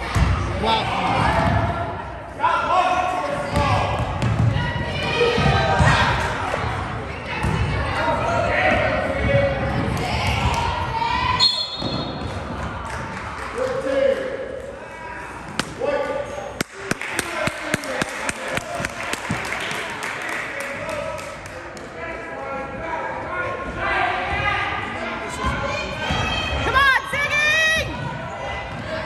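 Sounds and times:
voices of players and spectators: 0:00.0 - 0:29.0.

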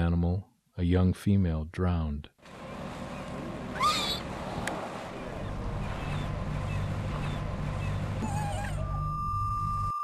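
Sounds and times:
wind: 0:00.0 - 0:10.0
water noise: 0:02.4 - 0:09.6
killer whale call: 0:07.8 - 0:10.0.

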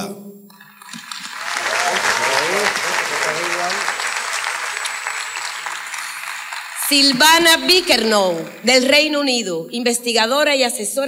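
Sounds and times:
audience applauding: 0:00.7 - 0:09.5.

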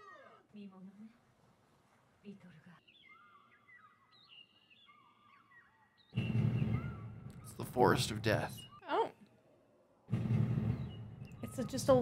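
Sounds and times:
faint bird chirps and whistles: 0:02.8 - 0:09.4, 0:10.7 - 0:12.0.

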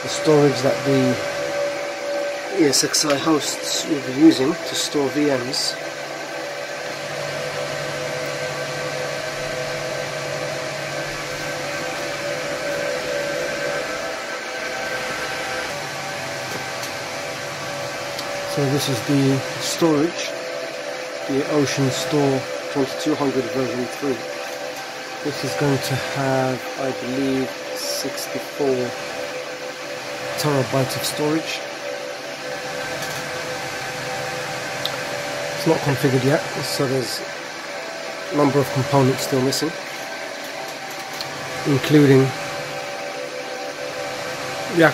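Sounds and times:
server cooling fans whirring: 0:00.0 - 0:44.9.

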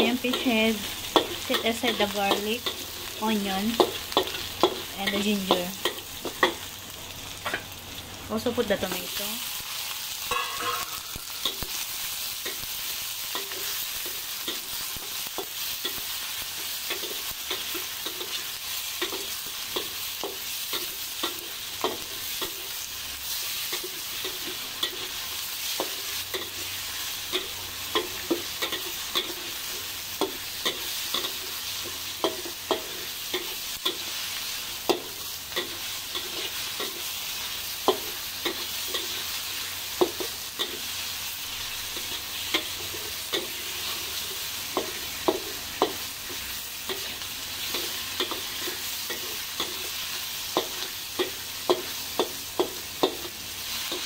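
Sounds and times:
vegetables sizzling in oil: 0:00.0 - 0:54.0
metal spatula scraping a pan: 0:09.4 - 0:12.7.

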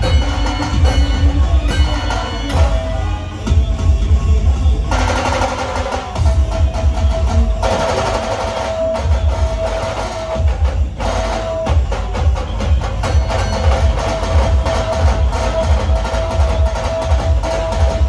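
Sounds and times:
fast drumming: 0:00.0 - 0:18.0
heavy bass pulses: 0:00.0 - 0:18.0.

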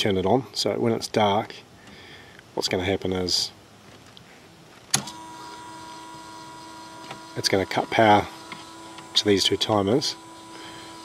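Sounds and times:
electric motor hum: 0:05.0 - 0:11.0.

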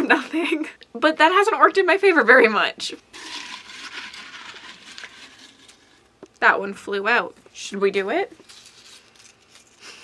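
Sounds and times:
paper slips rustling in glass jar: 0:03.1 - 0:06.0, 0:08.4 - 0:10.0.

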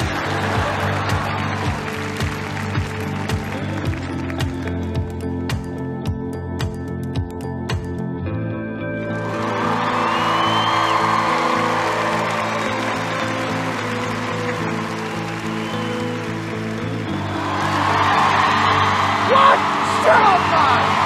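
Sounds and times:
audience applauding and cheering: 0:00.0 - 0:05.6, 0:09.0 - 0:21.0
background music: 0:00.0 - 0:21.0.

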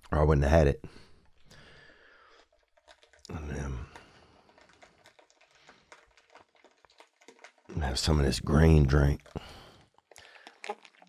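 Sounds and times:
typing on laptop keyboard: 0:02.2 - 0:07.7.

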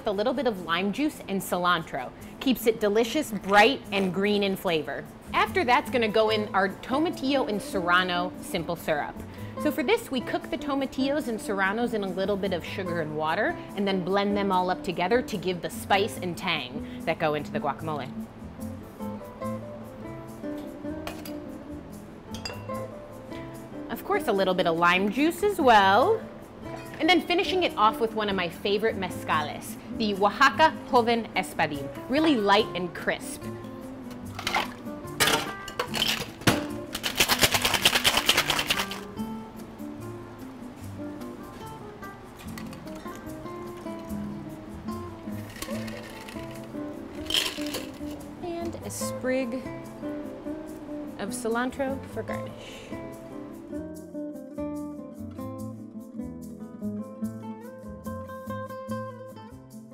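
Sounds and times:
background music: 0:00.0 - 0:59.9
metal jigger clinking on shaker tin: 0:34.3 - 0:39.1, 0:45.4 - 0:48.2.

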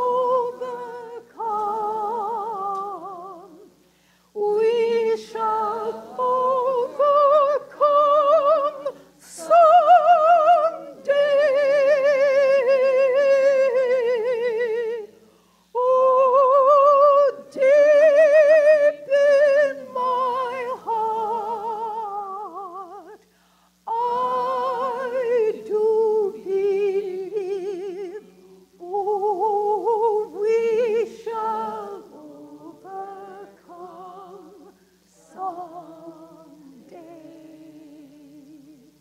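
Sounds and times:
woman singing operatic solo: 0:00.0 - 0:03.8, 0:04.4 - 0:23.2, 0:23.8 - 0:39.0.

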